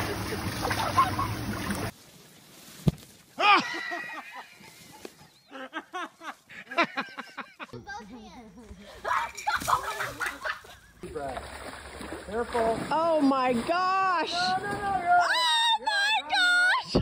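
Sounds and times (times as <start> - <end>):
people laughing: 0.0 - 1.4, 3.4 - 7.8, 8.8 - 11.0
water splashing: 0.0 - 3.0, 9.1 - 15.2
excited voices calling out: 13.8 - 17.0.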